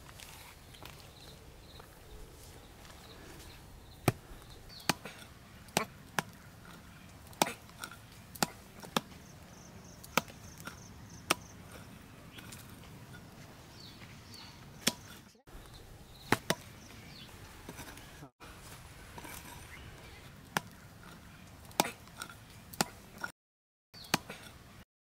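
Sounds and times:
hand hoe chopping into dry soil: 4.0 - 9.3, 9.9 - 12.9, 14.8 - 15.2, 16.3 - 16.8, 20.5 - 23.3, 24.0 - 24.6.

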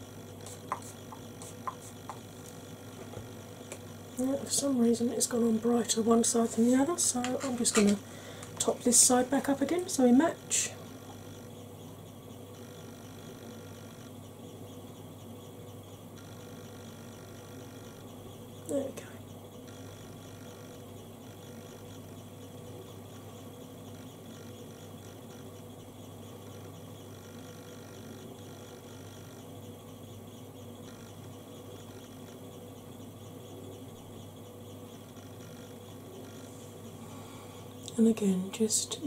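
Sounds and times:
faint electrical hum and hiss: 0.0 - 39.0.

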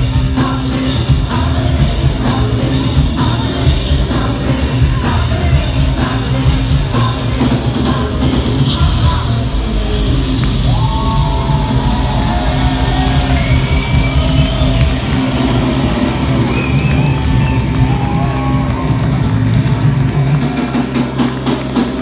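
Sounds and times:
live rock band playing: 0.0 - 22.0.

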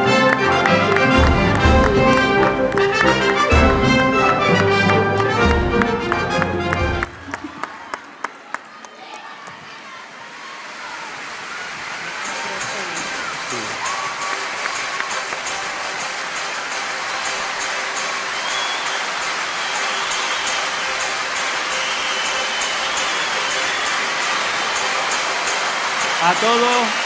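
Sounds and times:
music with steady beat: 0.0 - 7.1
audience applause and cheering: 0.0 - 27.0
voices calling out: 8.6 - 16.4.

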